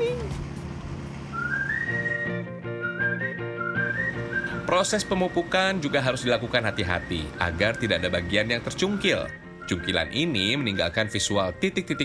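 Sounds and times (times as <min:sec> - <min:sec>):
whistled melody: 0:01.3 - 0:12.0.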